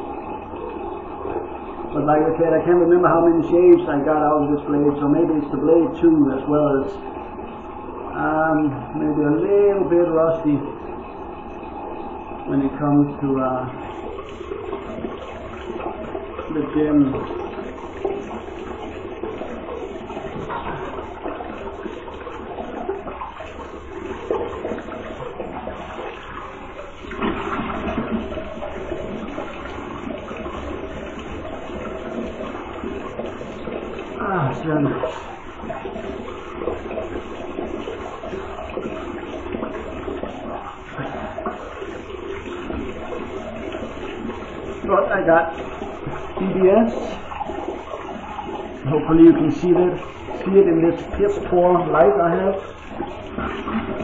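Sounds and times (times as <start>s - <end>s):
water splashing on face: 0.0s - 54.0s.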